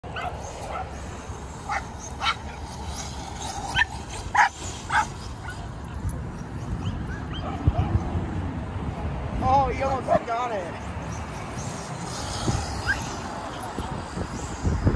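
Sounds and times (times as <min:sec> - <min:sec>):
dogs barking and yipping: 0:00.0 - 0:08.6, 0:10.0 - 0:14.6.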